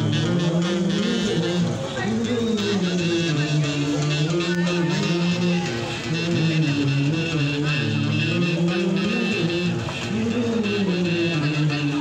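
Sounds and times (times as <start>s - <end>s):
harmonica through a microphone: 0.0s - 12.0s.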